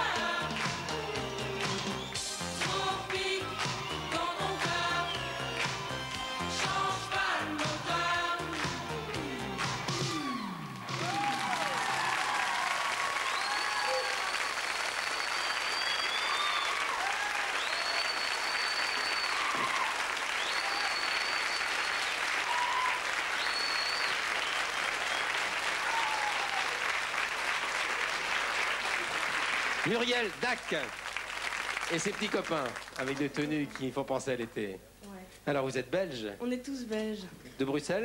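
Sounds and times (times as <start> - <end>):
pop song: 0.0 - 11.3
audience applauding: 0.0 - 34.0
audience cheering: 9.6 - 33.7
long high whistles: 13.3 - 26.6.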